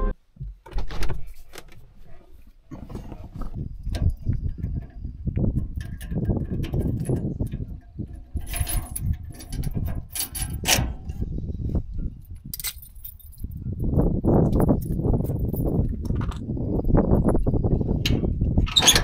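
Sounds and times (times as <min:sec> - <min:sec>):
wind rumble on microphone: 0:02.7 - 0:19.0
metal chains jangling and clinking: 0:12.6 - 0:13.5.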